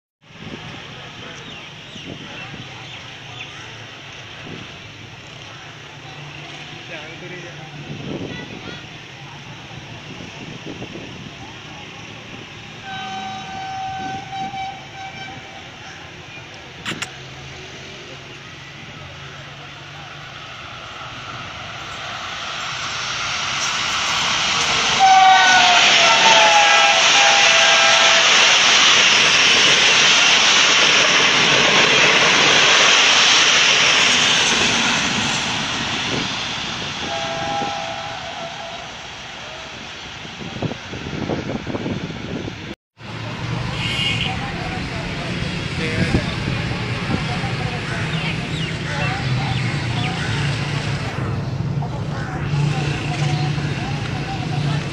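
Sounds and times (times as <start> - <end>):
train coaches rushing by: 0.3 - 54.9
train horn: 12.8 - 15.8, 24.9 - 28.6, 37.0 - 39.1.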